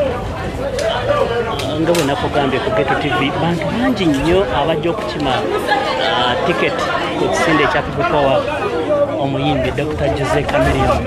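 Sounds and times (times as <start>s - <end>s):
overlapping chatter of voices: 0.0s - 11.0s.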